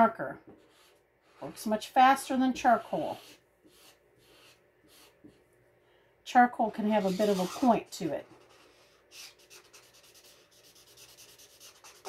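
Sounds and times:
marker scrubbing on paper: 0.6 - 5.4, 6.8 - 12.0.

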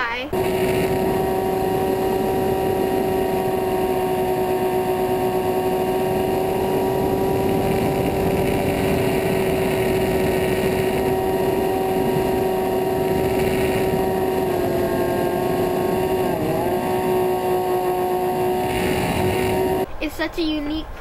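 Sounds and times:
electric motor whine: 0.3 - 19.9.

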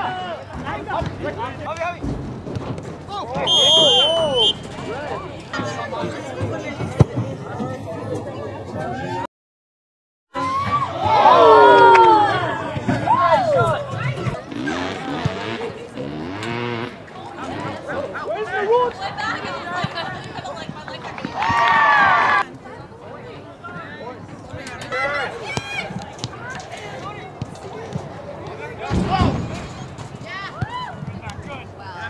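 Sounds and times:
players and spectators shouting: 3.2 - 6.0, 10.4 - 15.8, 21.1 - 22.5
referee's whistle blast: 3.4 - 4.7.

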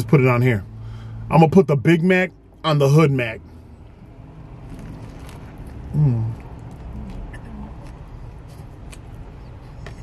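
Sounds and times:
low rumble inside a car: 0.0 - 10.0
biting and chewing: 4.5 - 10.0.

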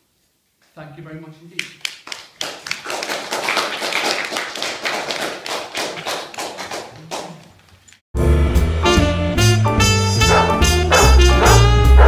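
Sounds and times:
audience applauding: 1.8 - 7.7.

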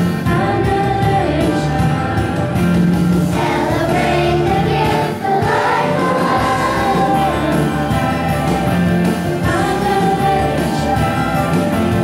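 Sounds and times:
children's choir singing: 3.3 - 8.3, 9.4 - 11.2.

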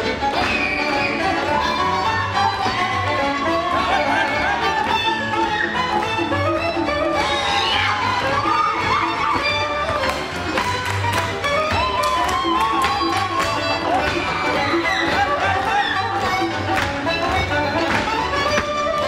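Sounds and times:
boot heels tapping on stage: 0.0 - 19.0
fiddle folk dance music: 0.0 - 19.0.

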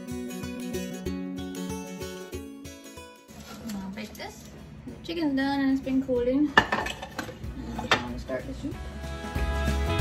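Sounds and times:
background guitar music: 0.0 - 10.0.

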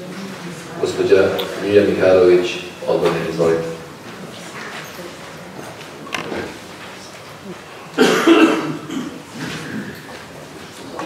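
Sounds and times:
person coughing: 8.0 - 9.3.

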